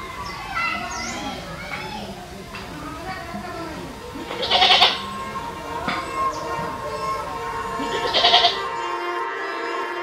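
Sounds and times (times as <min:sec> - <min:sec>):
background voices: 0:00.0 - 0:08.8
loud wavering bleat: 0:03.4 - 0:08.8.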